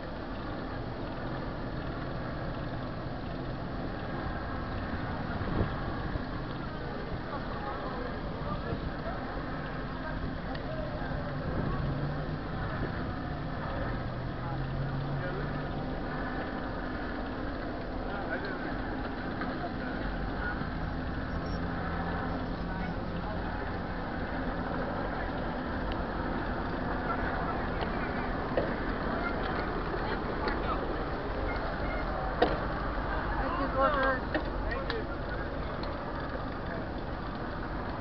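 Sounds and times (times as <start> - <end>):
chatter of many cyclists: 0.0 - 38.0
low vehicle hum: 0.0 - 38.0.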